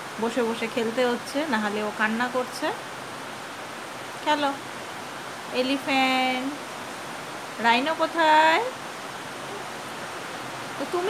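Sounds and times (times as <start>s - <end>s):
heavy rain falling: 0.0s - 11.0s.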